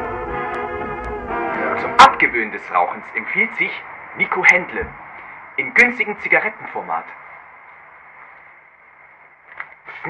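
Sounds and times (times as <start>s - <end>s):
faint hum: 0.0s - 9.5s.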